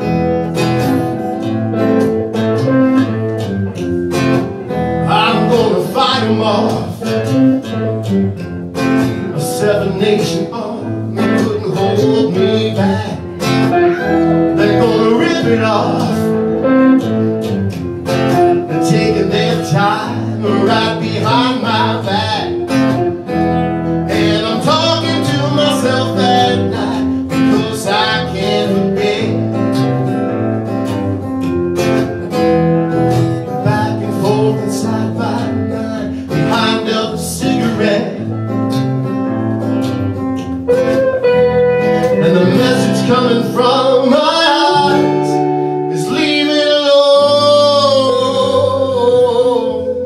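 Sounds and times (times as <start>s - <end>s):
acoustic guitars strummed and picked: 0.0s - 50.0s
person singing: 4.6s - 7.9s, 9.2s - 17.1s, 18.4s - 30.2s, 33.4s - 38.4s, 40.7s - 50.0s.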